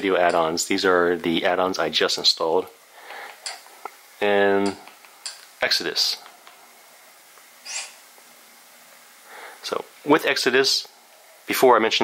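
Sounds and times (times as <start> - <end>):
hissy puff of breath: 9.2 - 9.6.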